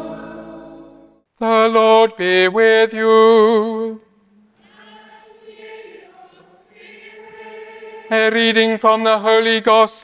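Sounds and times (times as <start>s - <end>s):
congregation singing a chant: 0.0s - 1.1s, 4.6s - 9.6s.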